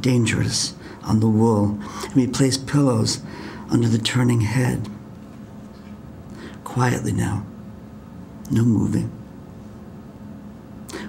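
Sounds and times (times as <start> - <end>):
man speaking: 0.0 - 5.0, 6.6 - 7.5, 8.4 - 9.2
faint steady hum: 0.0 - 11.0.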